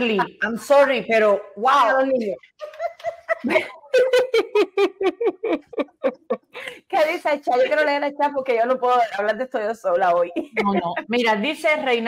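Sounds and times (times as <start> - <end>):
women laughing: 2.6 - 6.9, 10.3 - 11.2.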